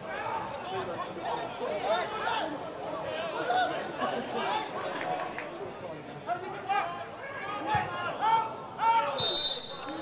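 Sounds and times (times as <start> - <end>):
referee's whistle blast: 9.2 - 10.0.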